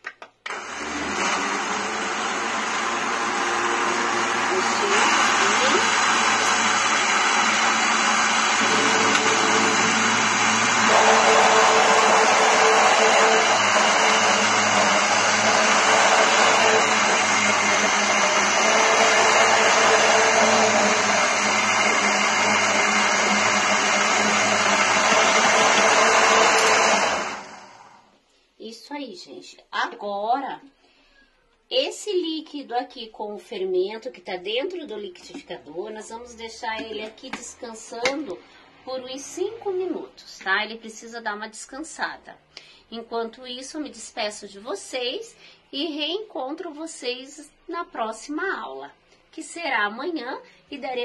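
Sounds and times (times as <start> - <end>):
electric blender running: 0.5 - 28.0.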